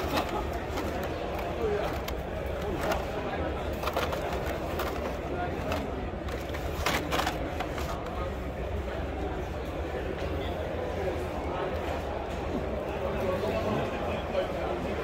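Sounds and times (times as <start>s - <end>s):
sharp plastic clacks: 0.0s - 8.2s
plastic packs clicking and rustling: 0.0s - 8.4s
background chatter: 0.0s - 15.0s.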